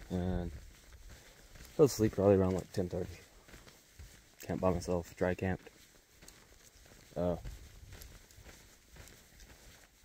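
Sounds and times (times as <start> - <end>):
footsteps on dirt trail: 0.0 - 10.0
person saying uh: 7.1 - 7.5.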